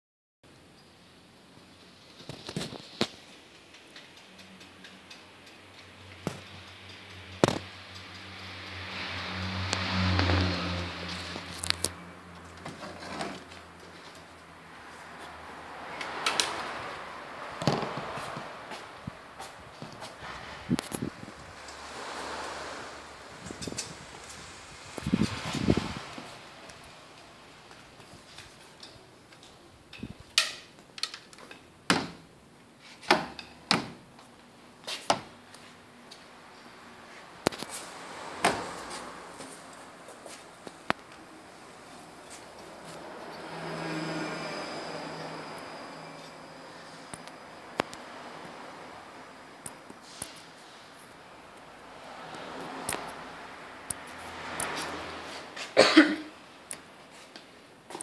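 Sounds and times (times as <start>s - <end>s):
rushing noise with low hum: 14.6s - 28.6s.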